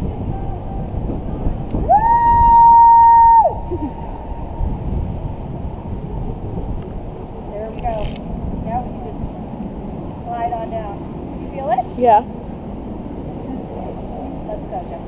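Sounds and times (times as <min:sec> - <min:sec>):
wind on microphone: 0:00.0 - 0:15.0.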